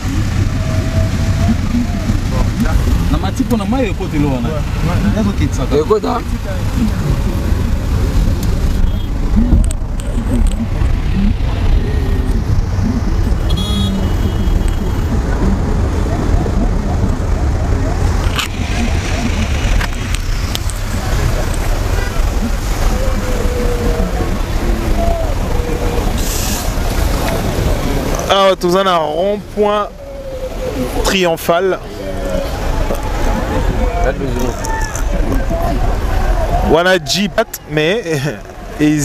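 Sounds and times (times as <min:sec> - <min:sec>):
car driving rumble: 0:00.0 - 0:39.0
faint voices: 0:00.0 - 0:39.0.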